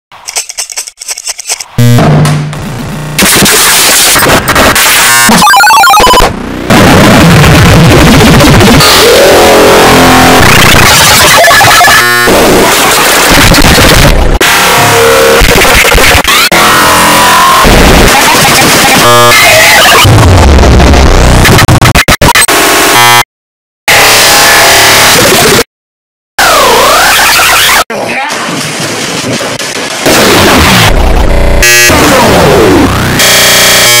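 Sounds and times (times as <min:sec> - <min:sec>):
distorted music and noise: 0:01.7 - 0:23.3, 0:23.9 - 0:25.7, 0:26.4 - 0:34.0
harsh buzzing tones: 0:01.7 - 0:23.3, 0:30.1 - 0:34.0.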